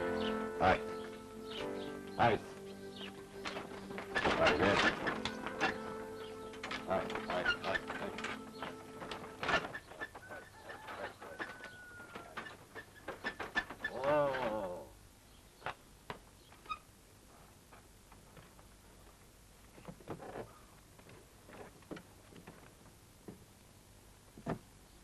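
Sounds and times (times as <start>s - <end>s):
held music notes: 0.0s - 9.8s
horse hooves walking: 0.0s - 13.8s
wooden cart rolling: 1.6s - 14.6s.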